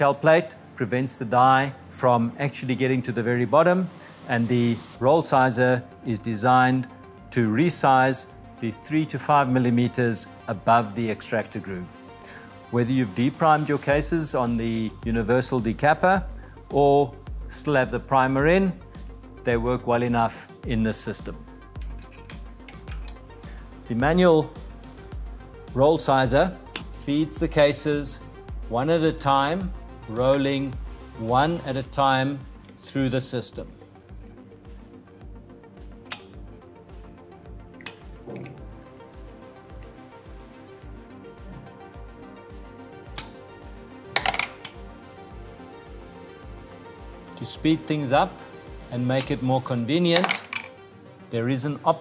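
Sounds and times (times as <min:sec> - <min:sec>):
background music with beat: 0:00.0 - 0:52.0
metal cartridge cases clinking: 0:21.8 - 0:23.3, 0:44.2 - 0:44.8, 0:50.2 - 0:50.8.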